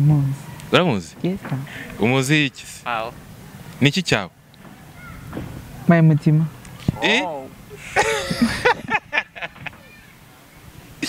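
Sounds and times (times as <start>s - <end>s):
low outdoor background hum: 0.0s - 11.0s
man saying a word: 7.0s - 7.6s.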